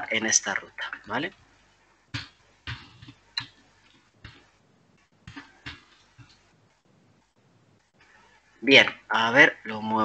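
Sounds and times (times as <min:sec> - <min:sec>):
keyboard and mouse clicks: 0:02.1 - 0:06.5.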